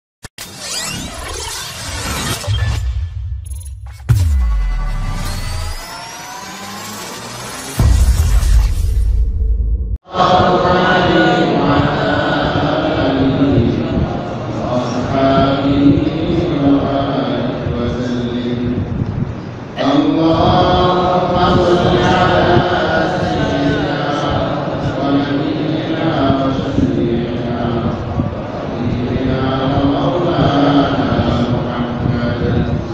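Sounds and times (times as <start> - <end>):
glittery shattering noise: 0.4 - 9.5
man chanting: 10.1 - 18.9, 19.8 - 32.9.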